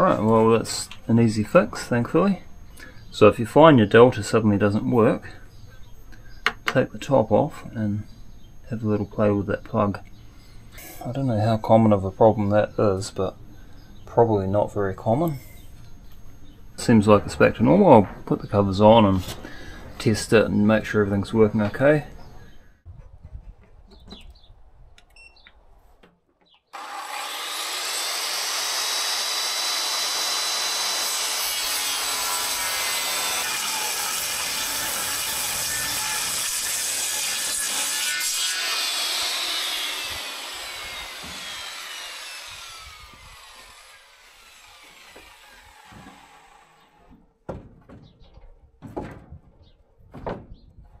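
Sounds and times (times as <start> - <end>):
circular saw cutting wood: 26.7 - 47.2.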